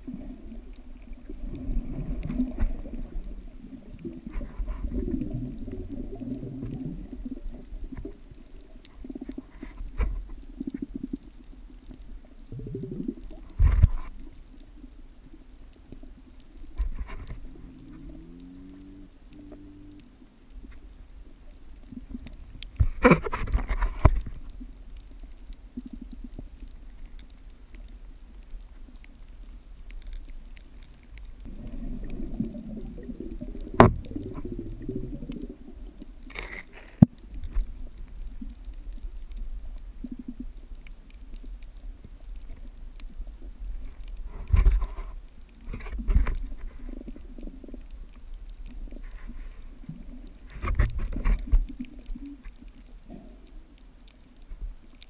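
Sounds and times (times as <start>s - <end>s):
underwater rumbling and gurgling: 0.0s - 55.0s.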